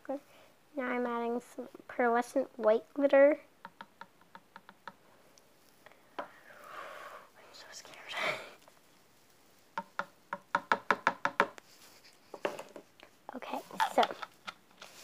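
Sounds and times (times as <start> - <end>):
soft whispered sound: 5.3 - 9.6, 13.0 - 14.0.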